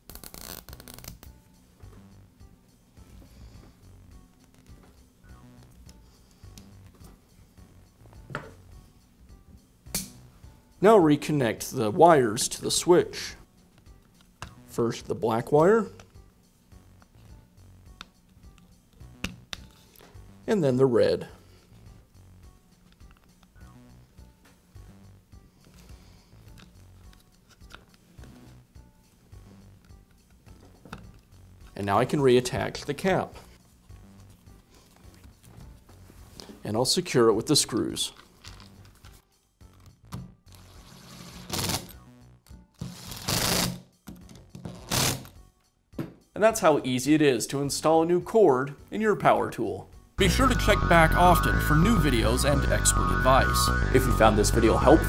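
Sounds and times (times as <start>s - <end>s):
faint background music: 0.0s - 55.0s.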